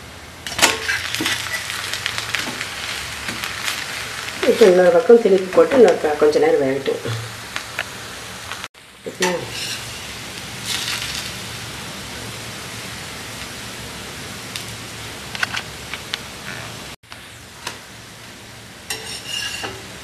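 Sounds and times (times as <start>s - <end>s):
batter sizzling on hot pan: 0.0s - 20.0s.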